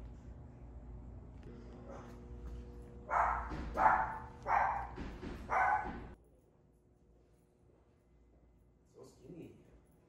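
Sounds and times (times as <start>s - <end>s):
steady low hum: 0.0s - 10.0s
dog barking: 3.1s - 6.2s.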